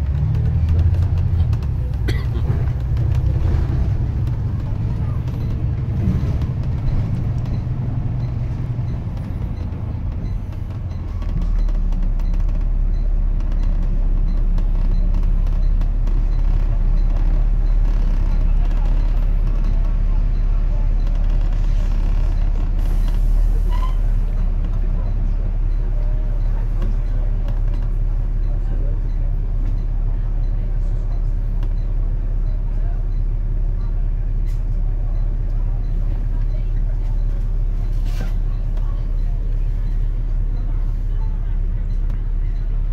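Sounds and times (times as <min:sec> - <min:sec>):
bus engine rumbling: 0:00.0 - 0:42.9.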